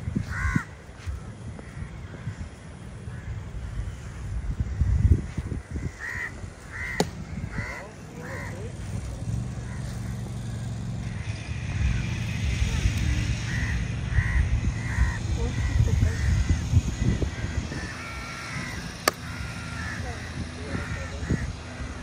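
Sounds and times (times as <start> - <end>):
crows cawing: 0.0 - 22.0
steady low rumble: 0.0 - 22.0.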